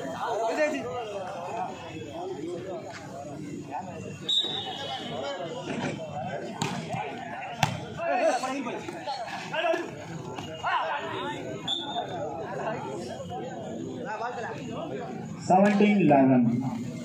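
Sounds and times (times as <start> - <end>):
people talking and calling out: 0.0 - 17.0
volleyball struck by hand: 6.6 - 7.0.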